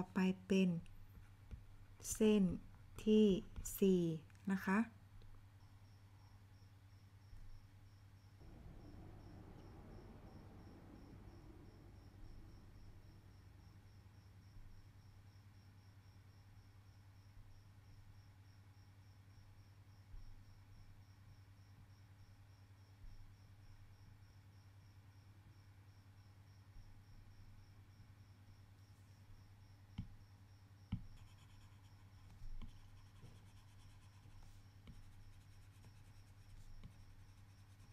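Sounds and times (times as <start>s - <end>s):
stylus scratching on tablet screen: 1.0s - 4.1s, 31.0s - 37.9s
low steady hum: 7.4s - 18.1s.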